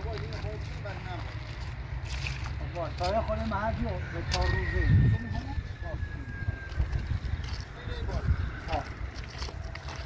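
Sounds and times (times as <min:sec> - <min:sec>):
wind rumble on microphone: 0:03.4 - 0:10.0
people talking: 0:07.5 - 0:08.9.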